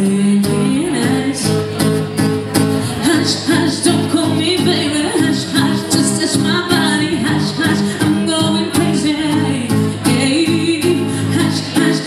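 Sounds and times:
acoustic guitar: 0.0 - 12.0
woman singing into a microphone: 0.0 - 12.0.

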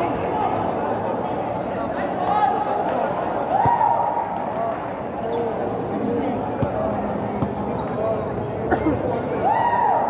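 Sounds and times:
people talking: 4.4 - 9.5.

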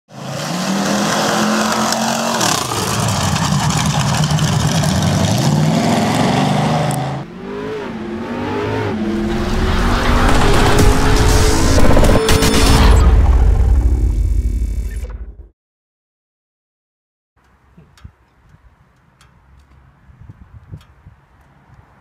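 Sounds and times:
engine running and revving: 0.1 - 14.6.

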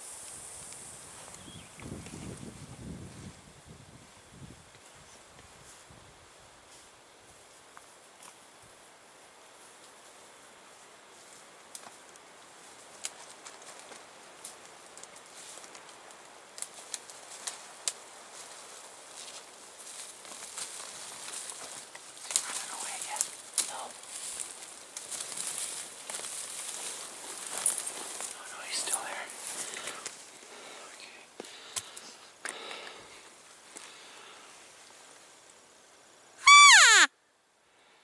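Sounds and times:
rustling: 12.6 - 35.3
hushed whispering: 22.3 - 24.0, 28.2 - 31.4.

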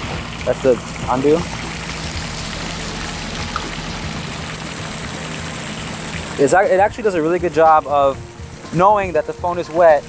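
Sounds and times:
fountain water splashing: 0.0 - 10.0.

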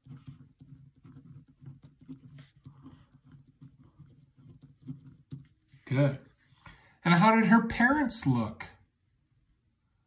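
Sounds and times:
pen scratching on paper: 0.0 - 6.5.

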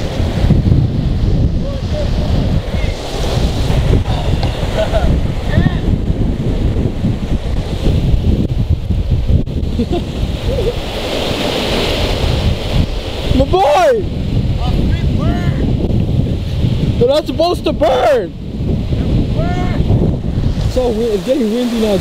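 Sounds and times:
river rushing: 0.0 - 6.0, 6.8 - 22.0
wind buffeting microphone: 0.0 - 22.0.

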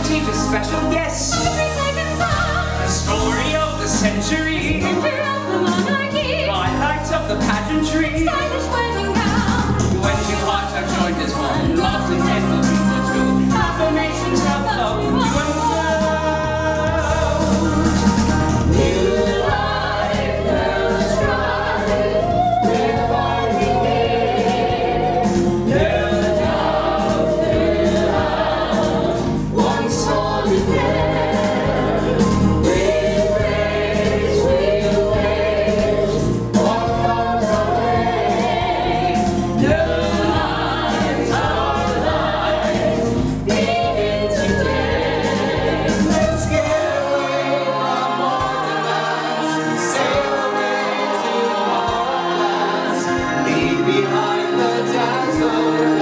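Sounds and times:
choir singing: 0.0 - 56.0
instrumental accompaniment: 0.0 - 56.0.

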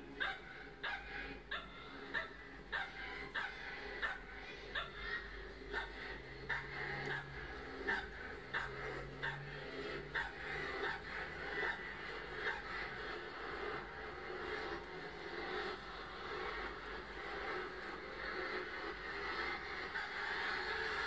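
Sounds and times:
small dog barking: 0.2 - 7.3, 7.9 - 11.8.

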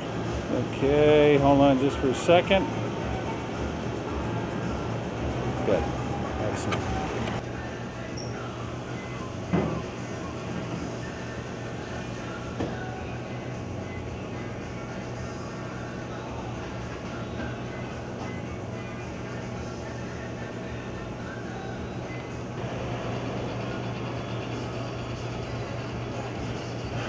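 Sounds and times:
background music: 0.0 - 27.0
steady low hum: 0.0 - 27.0.

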